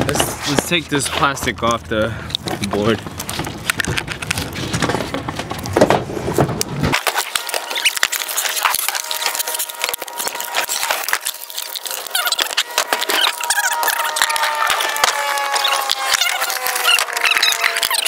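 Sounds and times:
plastic wrapping crinkling: 0:00.4 - 0:05.8, 0:06.8 - 0:18.0.

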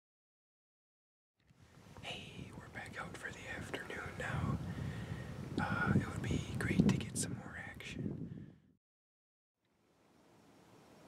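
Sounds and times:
young man whispering: 0:02.0 - 0:04.7, 0:05.6 - 0:08.1.

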